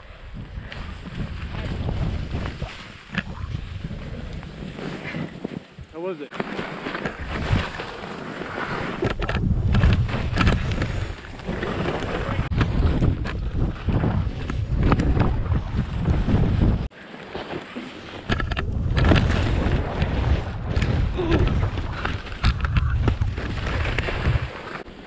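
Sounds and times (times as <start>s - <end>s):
wind buffeting microphone: 0.0s - 5.9s, 8.9s - 16.9s, 18.2s - 24.7s
skis scraping over snow: 0.5s - 25.0s.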